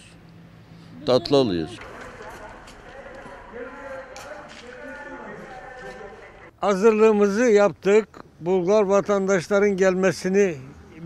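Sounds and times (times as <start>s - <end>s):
people talking in background: 0.9s - 6.6s.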